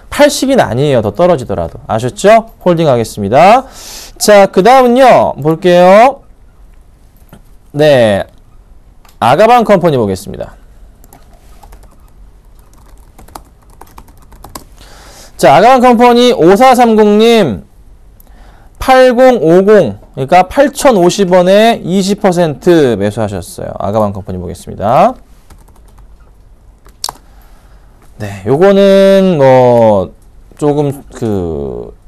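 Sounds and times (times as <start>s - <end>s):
laptop keyboard typing: 11.0s - 14.7s, 25.5s - 27.2s.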